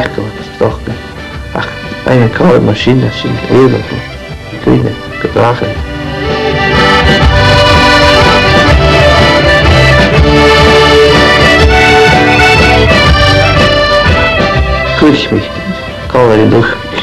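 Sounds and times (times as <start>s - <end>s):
piano accordion playing: 0.0s - 17.0s
pulsing bass beat: 5.8s - 15.0s.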